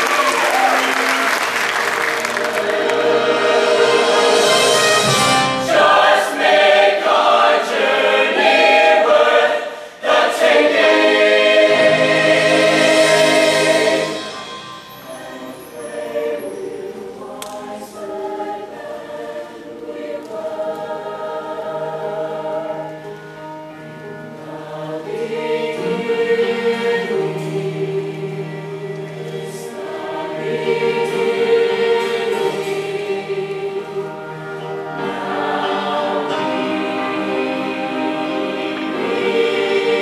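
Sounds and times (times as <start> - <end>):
choir singing held chords: 0.0 - 40.0.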